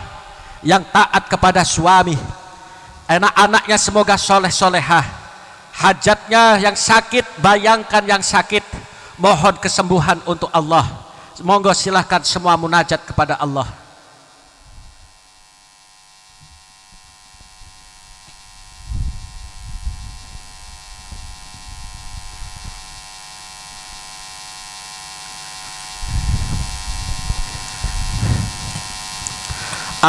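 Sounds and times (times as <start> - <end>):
electrical mains hum: 0.0 - 30.0
sound system hiss: 0.0 - 30.0.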